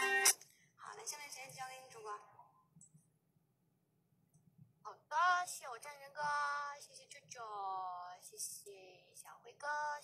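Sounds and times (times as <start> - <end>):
woman's voice: 0.8 - 2.6, 4.9 - 10.0.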